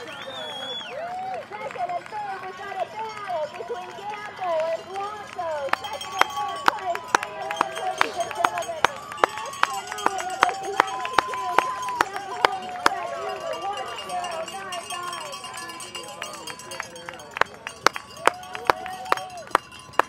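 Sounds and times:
spectators chattering and calling: 0.0s - 20.0s.

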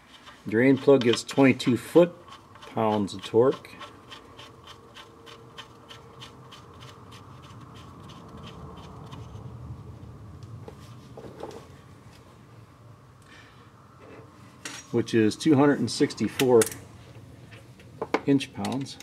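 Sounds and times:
low steady hum: 0.0s - 19.0s.

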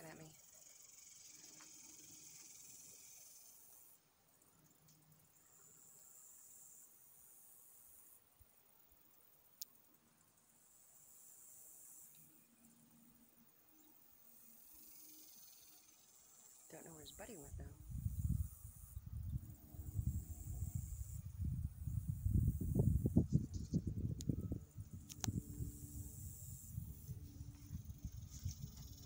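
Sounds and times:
high-pitched insect buzz: 0.0s - 9.7s, 10.3s - 29.0s.

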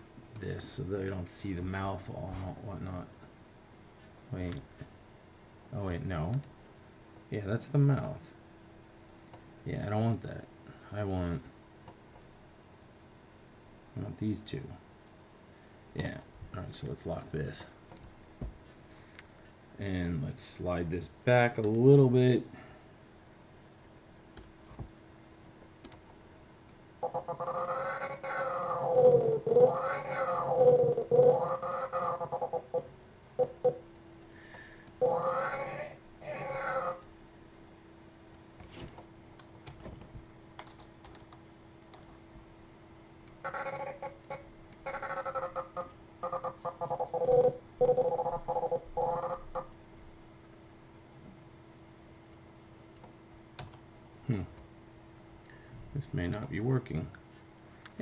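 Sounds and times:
faint steady hum: 0.0s - 58.0s
computer keyboard and mouse clicks: 25.8s - 26.0s, 40.6s - 42.2s.

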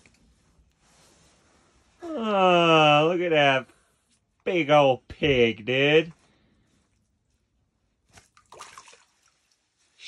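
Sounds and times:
faint water splashing: 8.1s - 10.0s.

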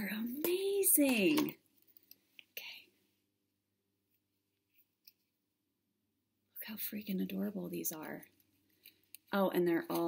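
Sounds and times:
soft whisper: 2.4s - 3.1s.

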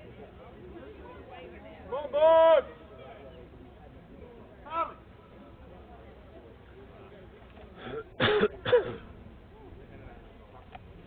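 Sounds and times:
person coughing: 7.8s - 9.0s.

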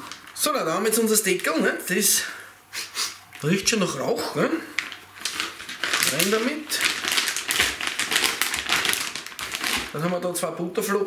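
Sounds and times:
plastic bag crinkling: 0.0s - 2.0s, 3.3s - 10.4s.

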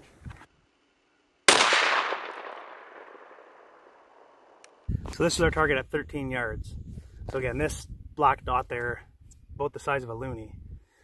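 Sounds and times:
shotgun shot with echo: 1.5s - 3.9s.

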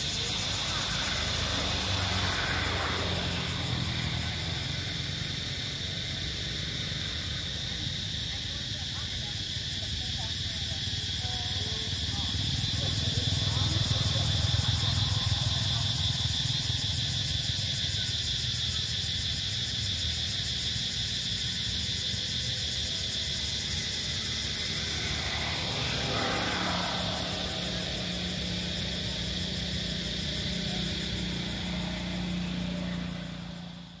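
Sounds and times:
motor vehicle passing: 0.0s - 19.8s, 22.6s - 34.0s.

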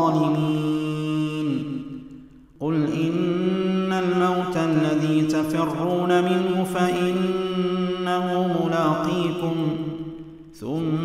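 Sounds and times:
man chanting a recitation: 0.0s - 2.0s, 2.6s - 11.0s.

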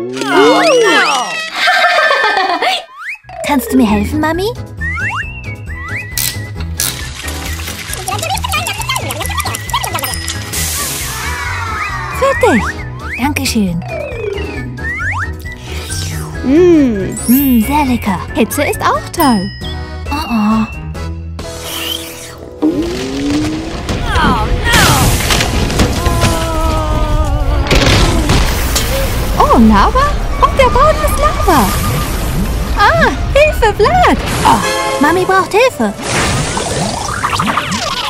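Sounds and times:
upbeat children's music: 3.3s - 21.6s.

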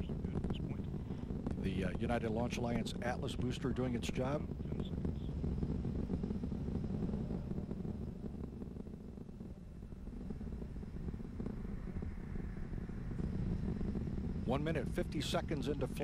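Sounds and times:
rocket engines rumbling: 0.0s - 16.0s.

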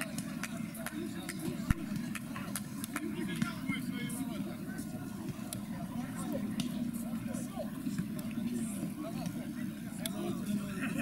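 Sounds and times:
players talking and calling out: 0.0s - 11.0s.

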